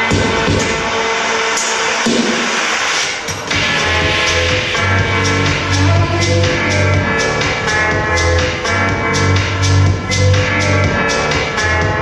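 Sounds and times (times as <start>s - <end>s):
electronic dance music over loudspeaker: 0.0s - 12.0s
heavy bass line: 0.0s - 12.0s.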